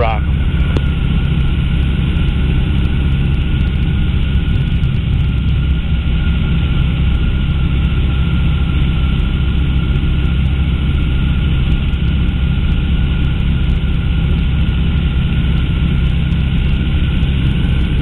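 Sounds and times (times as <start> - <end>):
aircraft engine and propeller drone: 0.0 - 18.0.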